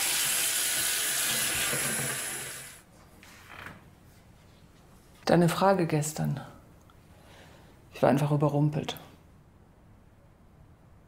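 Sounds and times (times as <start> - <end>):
tap water running into sink: 0.0 - 2.8.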